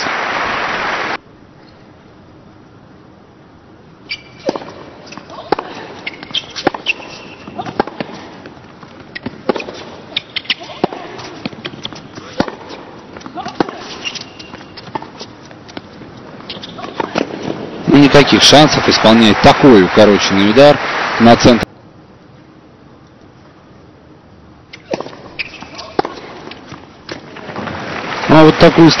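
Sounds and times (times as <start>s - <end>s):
tennis ball struck by rackets: 4.4s - 8.5s, 9.1s - 15.1s, 24.7s - 27.7s
crowd noise: 17.2s - 21.7s, 27.5s - 29.0s.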